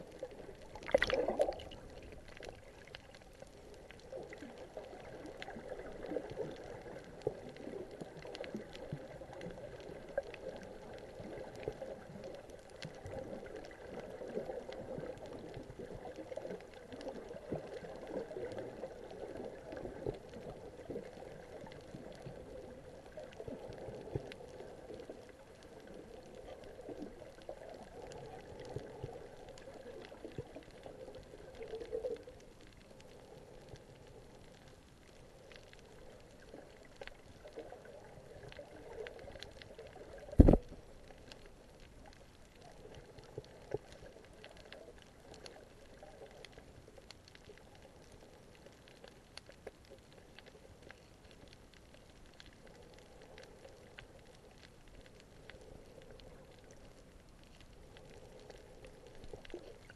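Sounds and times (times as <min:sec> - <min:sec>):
faint scattered clicks: 0:00.0 - 0:59.9
underwater churning and gurgling: 0:00.0 - 0:59.9.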